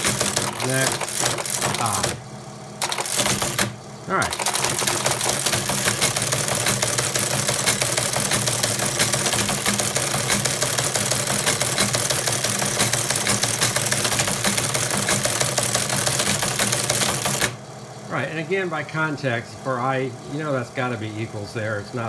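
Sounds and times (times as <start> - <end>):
teleprinter clattering: 0.0 - 2.2, 2.8 - 17.6
motor hum: 0.0 - 22.0.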